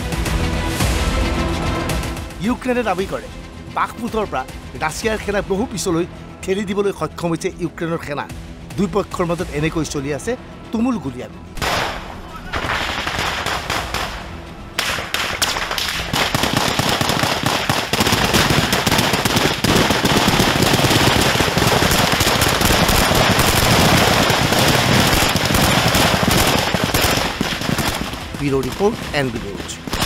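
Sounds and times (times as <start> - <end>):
automatic rifle gunfire: 11.6 - 14.2, 14.8 - 28.5.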